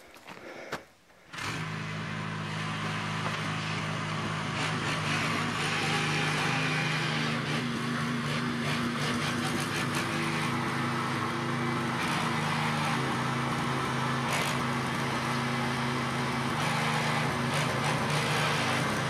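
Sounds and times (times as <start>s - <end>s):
tiller engine running: 1.2s - 19.0s.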